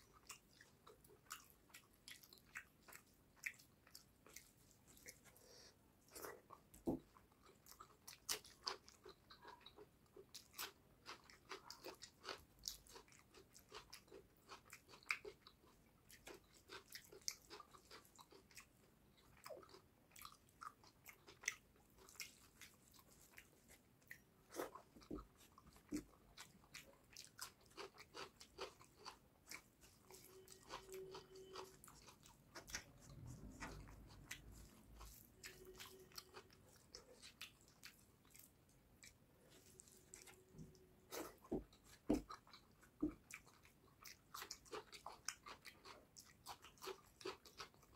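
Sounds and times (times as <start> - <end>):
close chewing with mouth clicks: 0.0 - 47.9.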